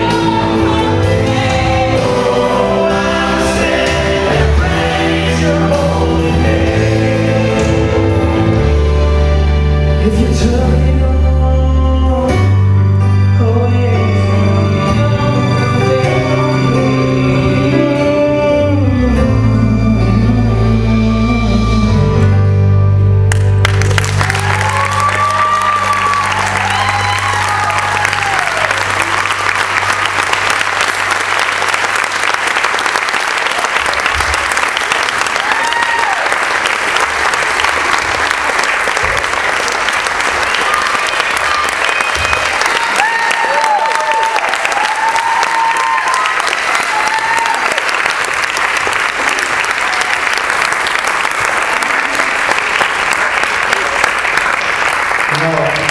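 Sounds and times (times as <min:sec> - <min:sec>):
audience applauding: 0:23.3 - 0:55.9
cheers and whoops: 0:24.1 - 0:30.0, 0:35.2 - 0:36.6, 0:40.3 - 0:48.2.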